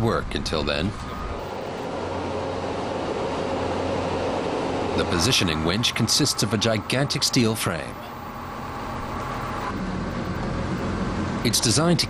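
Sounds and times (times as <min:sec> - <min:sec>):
heavy machinery drone: 0:00.0 - 0:12.0
faint held tones: 0:05.0 - 0:10.5.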